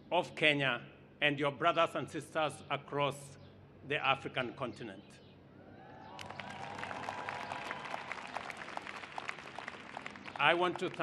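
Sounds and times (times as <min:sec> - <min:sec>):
crowd applause: 0:06.0 - 0:11.0.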